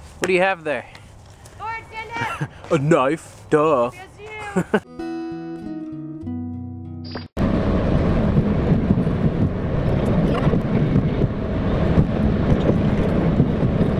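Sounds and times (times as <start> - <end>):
car cabin road and engine noise: 7.4 - 13.9.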